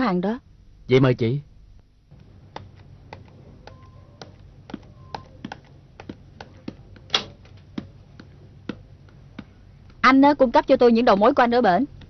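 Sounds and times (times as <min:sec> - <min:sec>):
typing on computer keyboard: 0:02.5 - 0:07.2.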